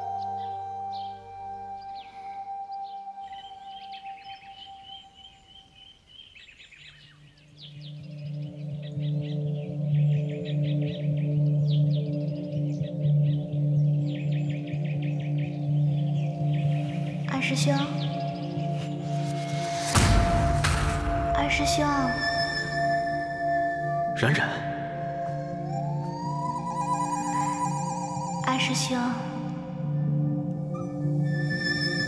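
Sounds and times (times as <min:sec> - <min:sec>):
small birds chirping: 0:00.0 - 0:20.0
droning dramatic music: 0:07.8 - 0:32.0
whooshing sweep: 0:18.6 - 0:23.4.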